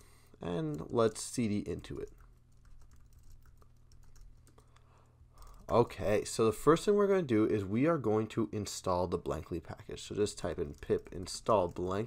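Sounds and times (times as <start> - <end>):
typing on computer keyboard: 1.9 - 4.8, 5.4 - 5.8, 10.4 - 12.0.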